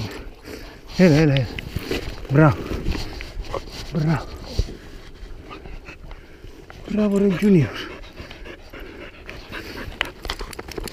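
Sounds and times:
dog panting: 0:02.9 - 0:10.9.

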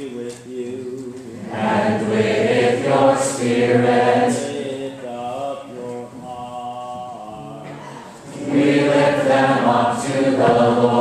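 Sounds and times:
church choir singing: 0:00.8 - 0:11.0.

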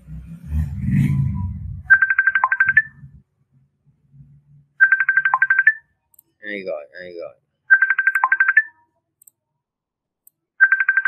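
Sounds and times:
low muffled rumble: 0:00.0 - 0:01.9
warbling ringtone trill: 0:01.9 - 0:03.0, 0:04.8 - 0:05.8, 0:07.7 - 0:08.7, 0:10.6 - 0:11.0.

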